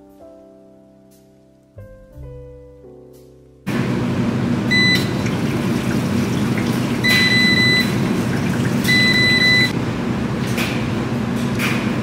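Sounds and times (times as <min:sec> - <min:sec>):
washing machine beeps: 0:04.7 - 0:05.8, 0:06.9 - 0:09.8
water rushing: 0:05.1 - 0:09.7.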